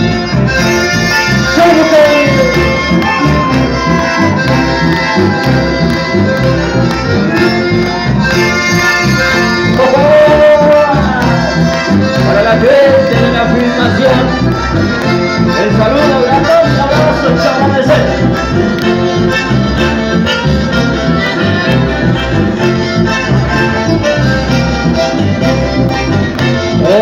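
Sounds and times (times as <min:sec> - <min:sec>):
accordion-led live band music: 0:00.0 - 0:27.0.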